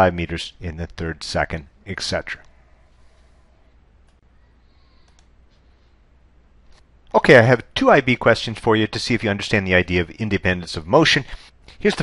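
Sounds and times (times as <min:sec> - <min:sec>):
steady low hum: 0:00.0 - 0:12.0
faint clicks: 0:04.0 - 0:04.3, 0:04.9 - 0:05.7.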